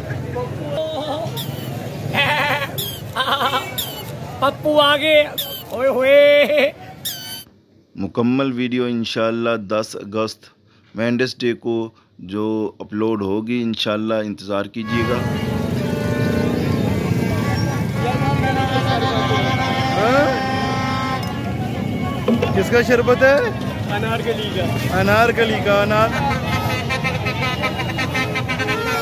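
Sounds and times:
busy street noise: 0.0s - 8.0s, 14.8s - 29.0s
short high squeal: 3.7s - 4.1s, 7.0s - 7.5s
horns blowing steady tone: 14.8s - 29.0s.

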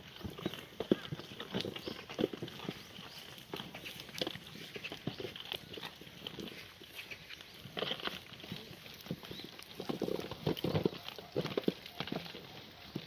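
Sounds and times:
goats chewing stems: 0.0s - 13.0s
hooves shuffling on gravel: 0.0s - 13.0s.

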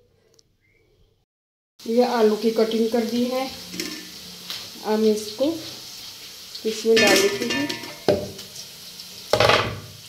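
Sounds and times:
potato pieces clattering into colander: 6.7s - 8.5s.

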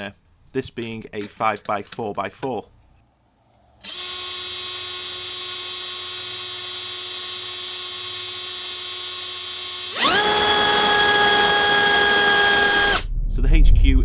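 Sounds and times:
electric motor whining: 3.8s - 13.0s.

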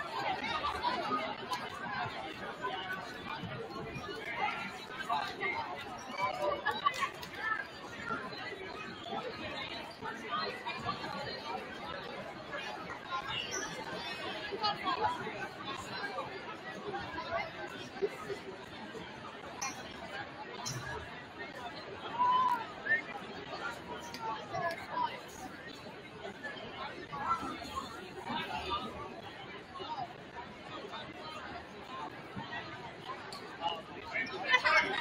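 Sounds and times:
chatter of spectators: 0.0s - 35.0s.

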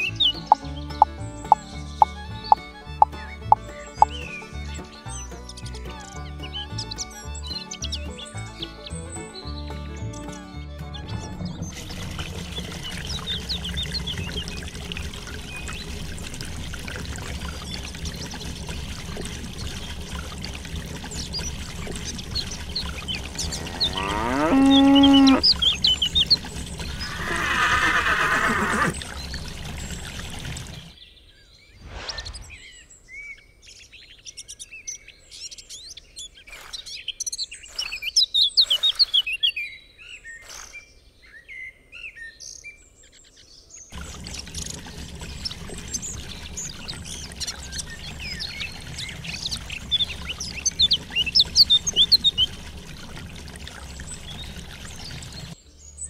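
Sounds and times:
birds chirping: 0.0s - 56.0s
water pouring into plastic basin: 11.6s - 31.0s, 43.9s - 55.6s
drawn-out animal call: 11.7s - 30.9s, 44.0s - 55.6s
cow mooing: 23.3s - 25.6s.

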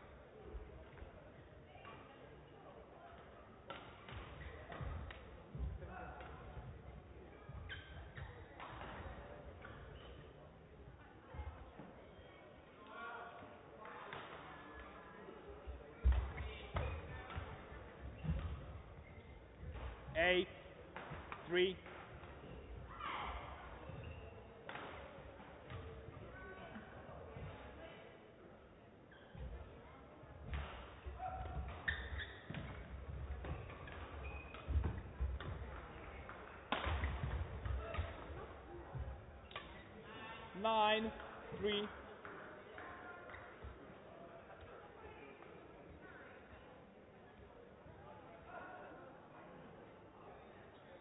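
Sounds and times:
faint indistinct voices: 0.0s - 51.0s.

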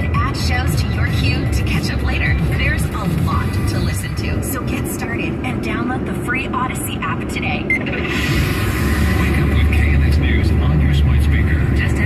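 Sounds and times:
car radio music: 0.0s - 12.0s
road and engine rumble: 0.0s - 12.0s
voice over radio music: 0.0s - 12.0s.

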